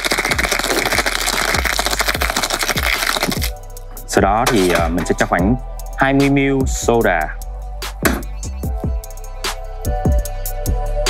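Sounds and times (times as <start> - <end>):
ice rattling in cocktail shaker: 0.0 - 3.6.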